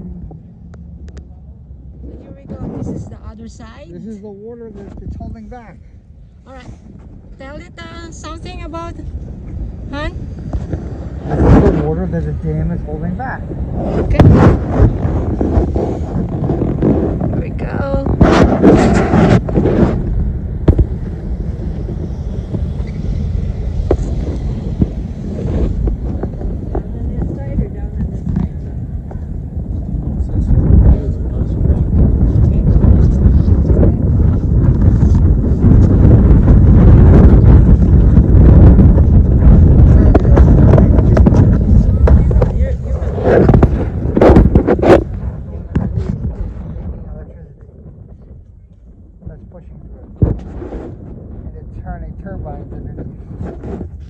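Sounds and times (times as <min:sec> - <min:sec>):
wind buffeting microphone: 0:00.0 - 0:54.0
people's voices: 0:26.3 - 0:35.3, 0:39.5 - 0:50.2.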